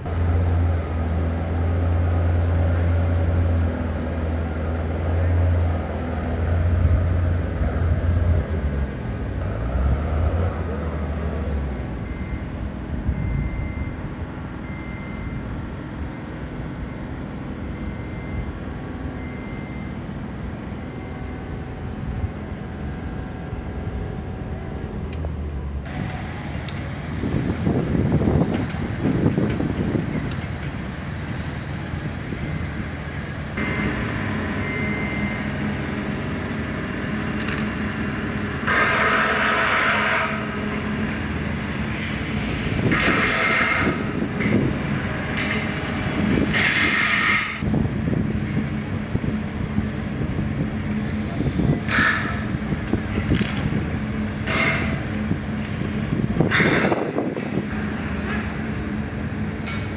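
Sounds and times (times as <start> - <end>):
construction machinery rumble: 0.0 - 59.9
engine hum: 0.0 - 59.9.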